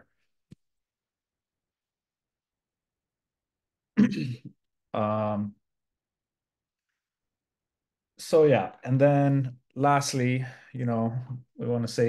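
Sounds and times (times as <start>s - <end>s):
man clearing throat: 4.0s - 4.5s.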